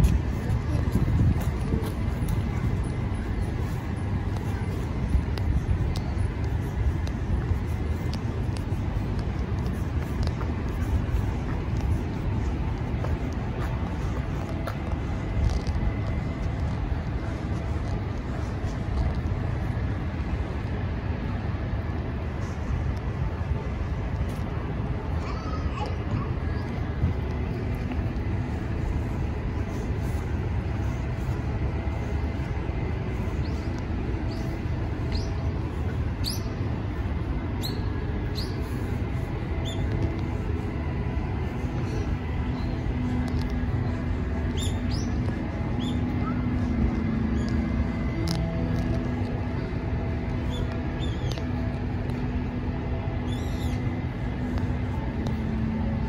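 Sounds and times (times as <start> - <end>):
distant traffic rumble: 0.0 - 56.0.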